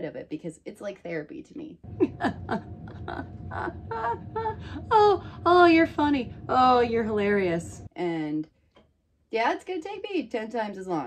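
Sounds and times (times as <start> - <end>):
low room hum: 1.8 - 8.6
woman laughing: 1.9 - 5.2.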